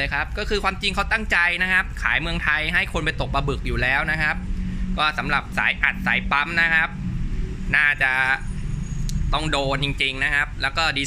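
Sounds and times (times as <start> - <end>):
man speaking: 0.0 - 8.5, 9.3 - 11.0
low background rumble: 0.0 - 11.0.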